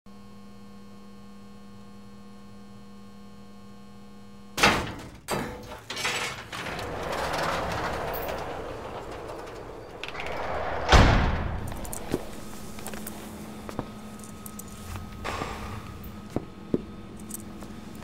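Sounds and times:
electrical hum: 0:00.3 - 0:18.0
loud metallic bang: 0:04.6 - 0:13.7
metal grille rattling and scraping: 0:05.3 - 0:15.2.

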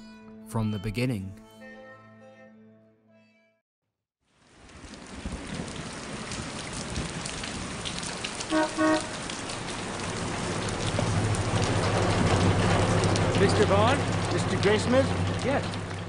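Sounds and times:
heavy rain on street: 0:04.3 - 0:16.0
car horn toots: 0:08.5 - 0:09.2.

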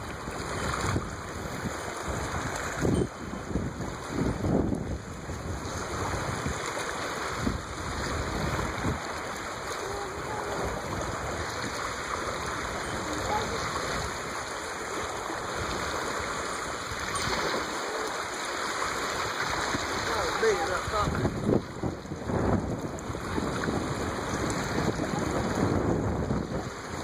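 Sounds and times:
choppy water lapping: 0:00.0 - 0:27.0.

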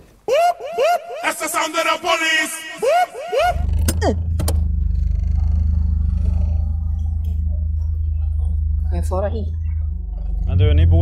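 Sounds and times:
tractor engine idling: 0:03.5 - 0:11.0.

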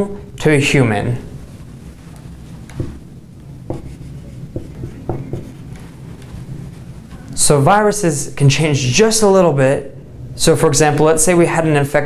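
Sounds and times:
marker writing on whiteboard: 0:01.7 - 0:07.3.

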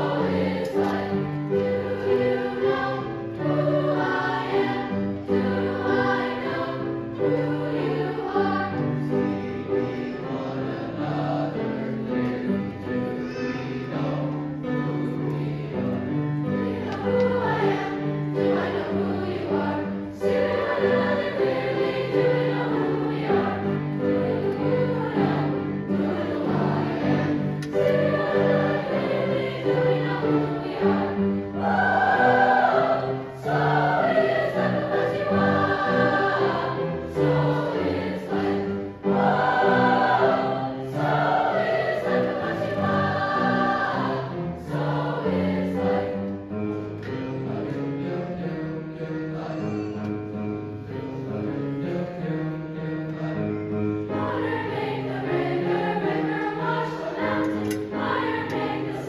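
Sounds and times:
youth choir singing in parts: 0:00.0 - 0:51.0, 0:53.0 - 0:59.0
piano accompaniment: 0:00.0 - 0:59.0.

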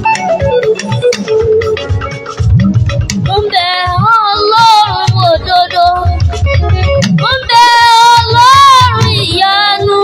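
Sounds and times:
band accompaniment: 0:00.0 - 0:10.0
child singing into a microphone: 0:03.3 - 0:06.2, 0:07.1 - 0:10.0.

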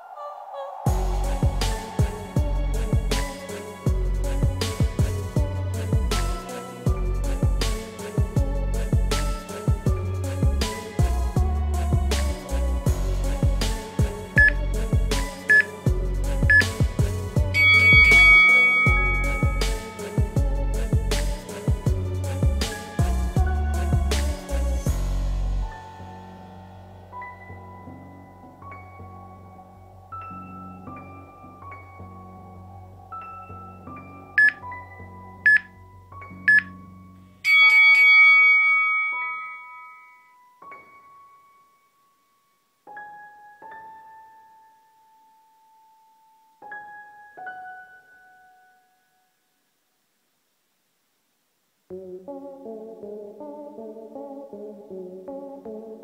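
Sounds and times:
background music with steady beat: 0:00.9 - 0:48.9, 0:51.9 - 0:56.0
long timer tone: 0:14.4 - 0:14.6, 0:17.6 - 0:19.7, 0:34.4 - 0:34.6, 0:37.5 - 0:40.3
timer countdown beeps: 0:14.4 - 0:14.6, 0:15.5 - 0:15.7, 0:16.5 - 0:16.8, 0:17.6 - 0:19.6, 0:34.4 - 0:34.6, 0:35.5 - 0:35.7, 0:36.5 - 0:36.7, 0:37.5 - 0:39.6
short countdown beeps: 0:15.5 - 0:15.7, 0:16.5 - 0:16.8, 0:17.6 - 0:19.6, 0:34.4 - 0:34.6.

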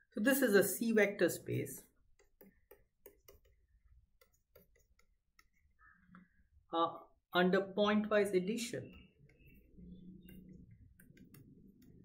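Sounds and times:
stylus tapping tablet screen: 0:01.8 - 0:06.3, 0:08.8 - 0:12.0.

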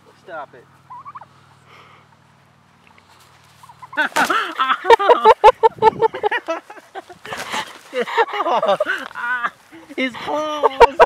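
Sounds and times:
turkey gobbling: 0:00.6 - 0:02.2, 0:02.8 - 0:05.8
wings flapping and scuffling: 0:02.9 - 0:04.8, 0:06.4 - 0:10.1.

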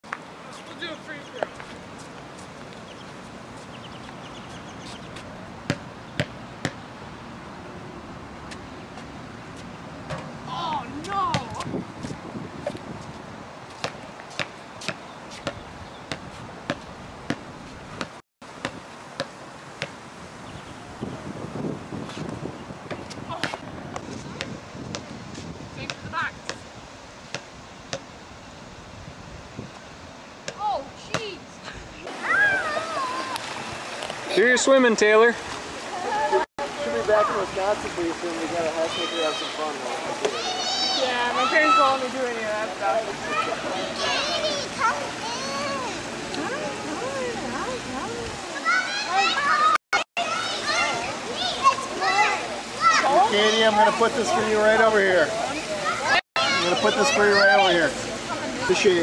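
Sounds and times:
outdoor background noise: 0:00.0 - 0:59.0
basketball bouncing on hard court: 0:05.7 - 0:06.8.

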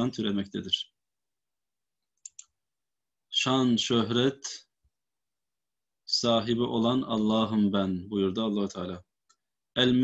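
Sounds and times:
computer mouse clicks: 0:02.0 - 0:02.6.

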